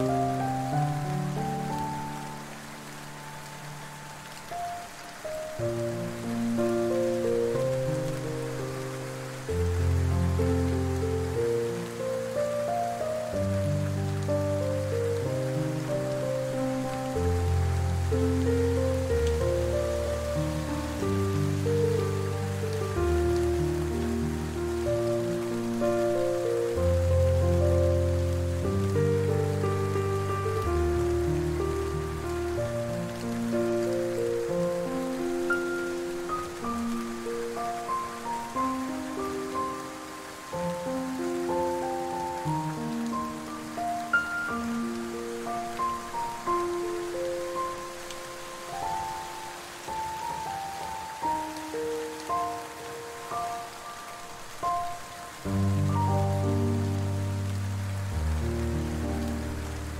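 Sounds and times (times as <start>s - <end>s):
soft slow piano music: 0.0s - 59.9s
steady rain: 0.0s - 59.9s.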